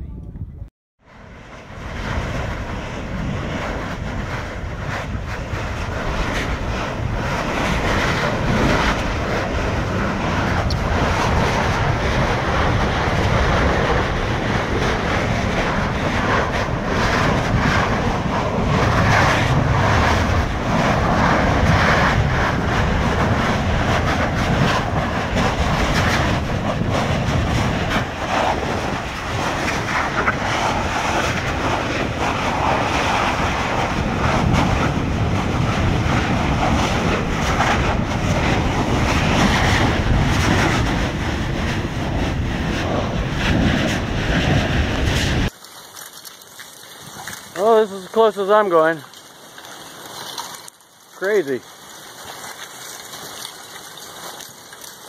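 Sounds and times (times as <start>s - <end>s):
lava fountains rushing: 1.0s - 55.0s
lava crackles: 1.1s - 55.0s.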